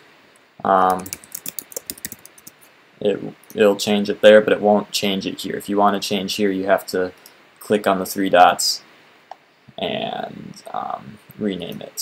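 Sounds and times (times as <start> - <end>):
computer keyboard typing: 0.8 - 2.6.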